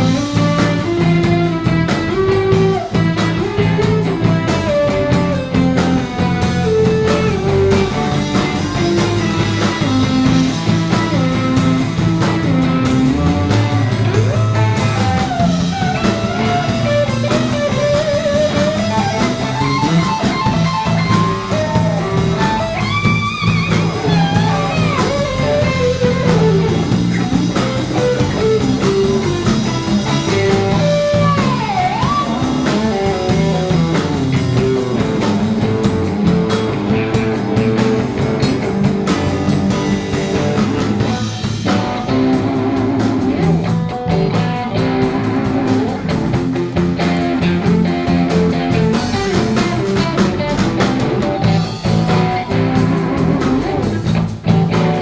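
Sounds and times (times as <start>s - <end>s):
blues-rock band playing: 0.0s - 55.0s
lead guitar bending notes: 0.0s - 55.0s.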